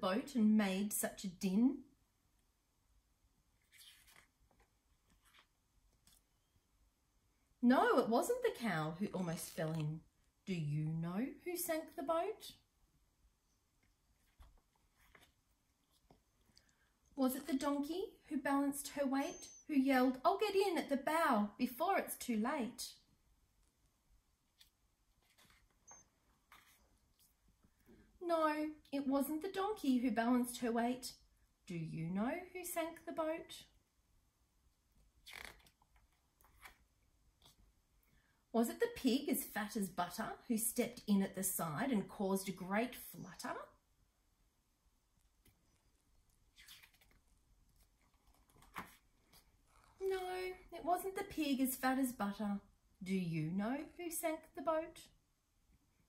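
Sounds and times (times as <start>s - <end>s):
paper page rustling: 3.6s - 6.3s, 14.2s - 16.2s, 24.5s - 27.4s, 35.2s - 37.6s, 46.5s - 50.0s
soft page clicks: 3.7s - 6.3s, 47.8s - 49.5s.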